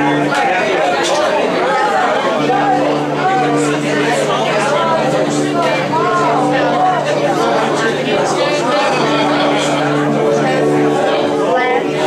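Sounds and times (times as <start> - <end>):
band holding low notes: 0.0 - 12.0
voices: 0.0 - 12.0.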